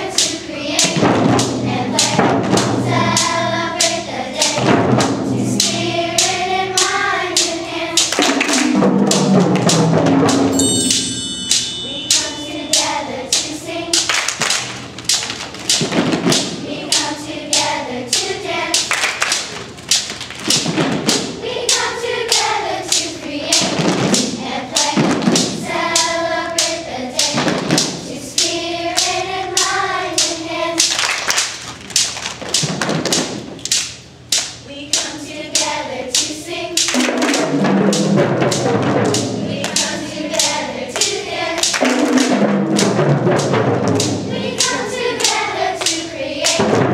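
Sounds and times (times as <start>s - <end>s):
children singing in unison: 0.0s - 9.4s, 11.8s - 14.2s, 16.5s - 18.9s, 21.4s - 30.9s, 38.4s - 43.0s, 44.0s - 46.9s
hand claps and stomps: 14.0s - 16.5s, 18.8s - 21.2s, 30.9s - 33.9s.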